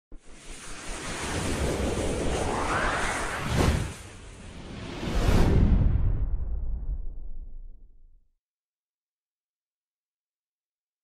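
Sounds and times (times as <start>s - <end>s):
rushing whoosh with low rumble: 0.1s - 8.2s.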